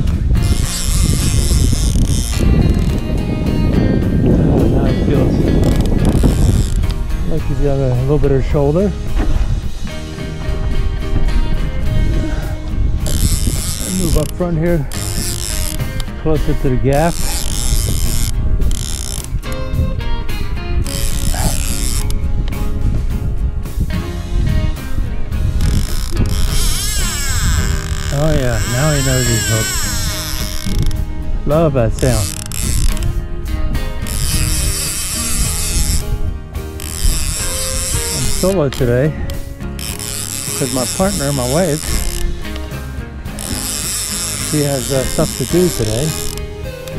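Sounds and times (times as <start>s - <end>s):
fishing reel gears clicking: 0.0s - 3.1s, 5.5s - 7.2s, 13.0s - 19.7s, 20.8s - 22.7s, 25.6s - 31.1s, 31.9s - 33.2s, 33.9s - 46.9s
background music held notes: 0.0s - 46.9s.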